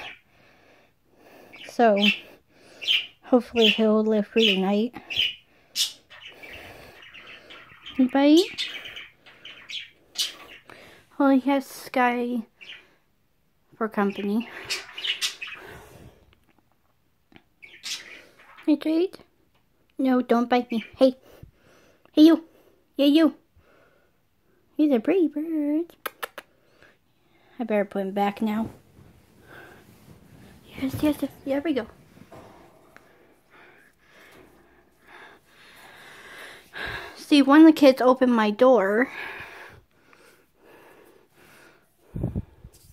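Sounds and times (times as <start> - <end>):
person breathing: 0.2 - 1.6, 29.0 - 37.2, 39.0 - 42.9
budgerigar chirping: 4.4 - 10.7, 14.6 - 15.7.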